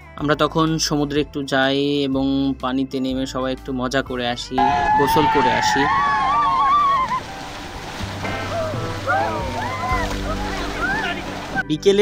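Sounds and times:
water splashing: 4.6 - 11.7.

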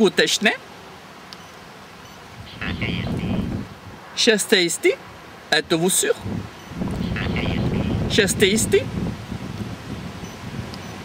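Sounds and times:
wind buffeting microphone: 2.4 - 4.0, 6.2 - 11.0.

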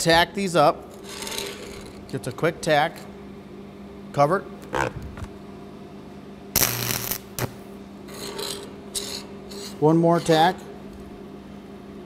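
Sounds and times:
steady hum: 0.0 - 12.0
welding arc crackling: 6.6 - 7.6.

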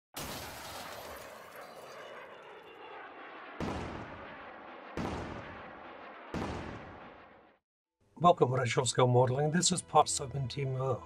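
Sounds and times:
loud bangs: 3.4 - 7.6.

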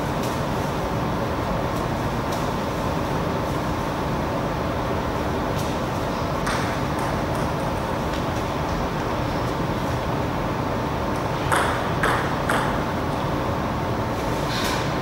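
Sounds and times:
table tennis ball bouncing: 11.5 - 12.8.

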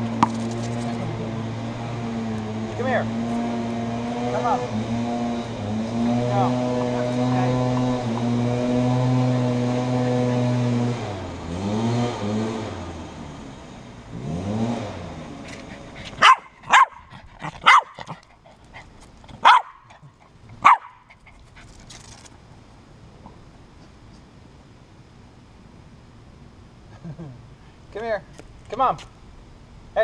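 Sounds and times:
motor hum: 0.0 - 21.1
small dog barking: 16.2 - 18.2, 19.4 - 20.0, 20.6 - 21.1.

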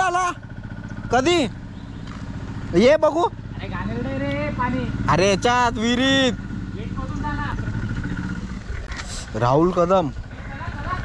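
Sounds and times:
engine running with low hum: 0.0 - 11.0.

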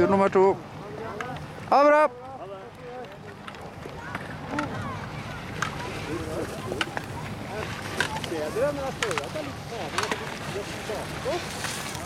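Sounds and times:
people talking: 0.0 - 11.6
steady outdoor rumble: 0.0 - 12.0.

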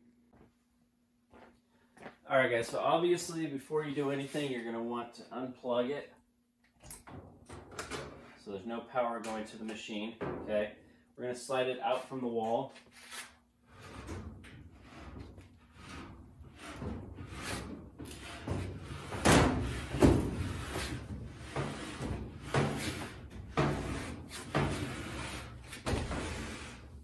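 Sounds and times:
washer scraping and bumping on floor: 13.7 - 27.0.

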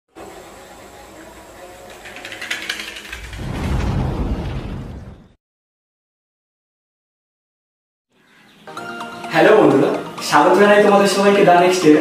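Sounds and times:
matchboxes toppling clatter: 1.9 - 3.4
deep rumbling explosion boom: 3.3 - 5.4.

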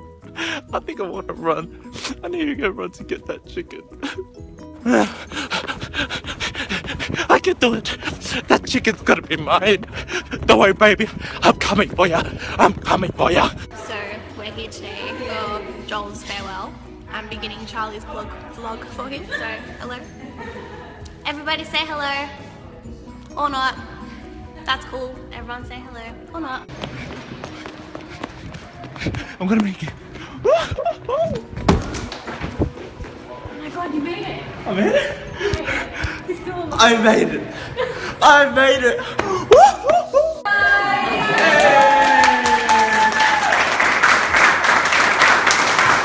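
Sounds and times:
hard breathing: 0.2 - 0.7, 3.9 - 8.6, 9.8 - 11.5, 12.2 - 12.7, 26.7 - 31.1, 34.9 - 36.4, 37.4 - 38.2
running footsteps on hard floor: 26.7 - 33.3.

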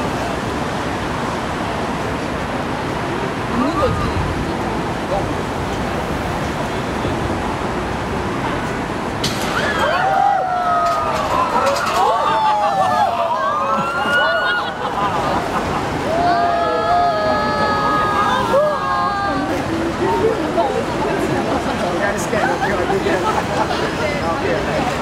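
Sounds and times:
steady background noise: 0.0 - 25.0.

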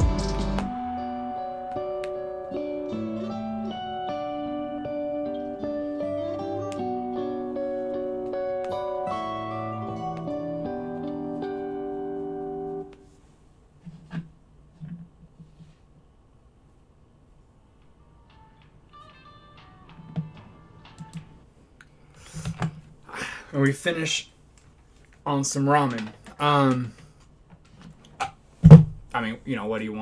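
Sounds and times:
low bass line: 0.0 - 1.1
fingerstyle guitar duet: 0.0 - 13.0.

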